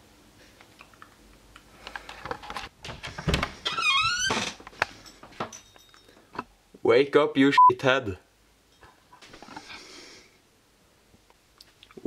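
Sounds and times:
door knocks and thuds: 0:02.8 - 0:03.6
door creaking: 0:02.8 - 0:04.6.

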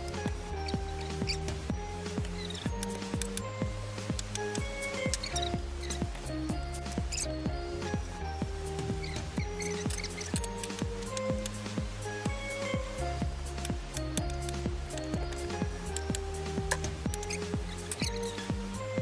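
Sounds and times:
music with steady beat and bass: 0:00.0 - 0:19.0.

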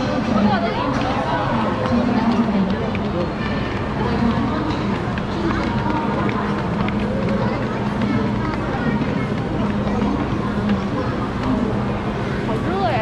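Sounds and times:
crowd talking: 0:00.0 - 0:13.0.

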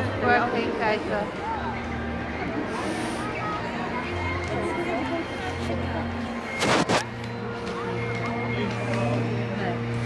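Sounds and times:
park music: 0:00.0 - 0:10.0.

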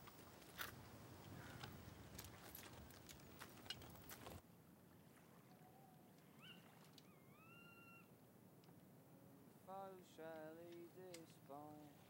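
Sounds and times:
faint whistled calls: 0:05.6 - 0:08.1.

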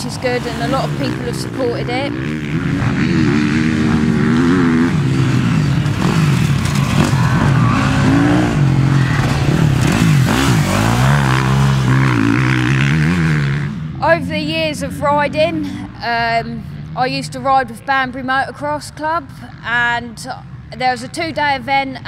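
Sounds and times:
motocross bike engine revving: 0:00.0 - 0:19.8.

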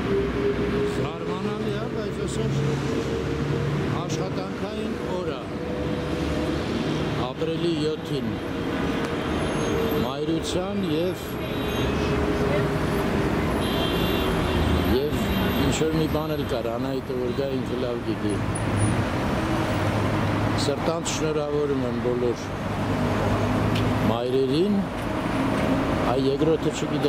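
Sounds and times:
road traffic noise: 0:00.0 - 0:27.0
passers-by talking: 0:10.0 - 0:13.7.

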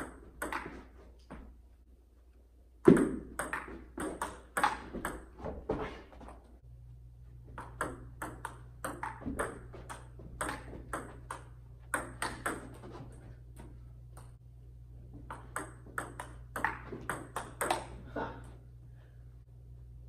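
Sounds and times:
low steady hum: 0:00.0 - 0:20.0
table tennis ball clicking: 0:07.6 - 0:12.8, 0:15.3 - 0:17.9.

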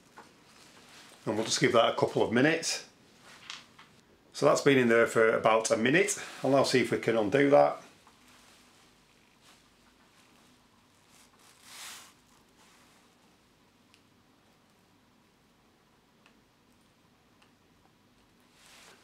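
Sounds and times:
soft rustle: 0:00.0 - 0:02.4, 0:03.0 - 0:04.0, 0:06.1 - 0:15.0, 0:18.2 - 0:19.0.

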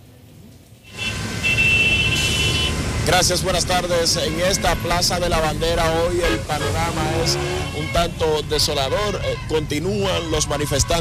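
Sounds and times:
traffic rumble and hiss: 0:00.0 - 0:11.0.

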